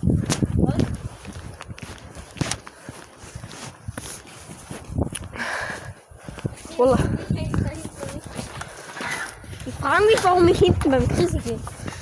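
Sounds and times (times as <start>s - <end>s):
microphone brushing against jacket: 0.0s - 5.3s, 6.3s - 12.0s
footsteps: 0.0s - 12.0s.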